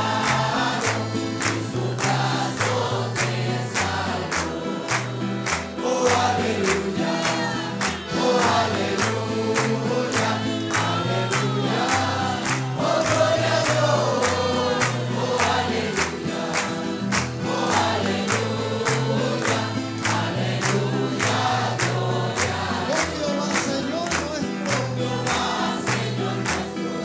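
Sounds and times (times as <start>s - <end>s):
congregation singing: 0.0s - 27.0s
hands clapping: 0.0s - 27.0s.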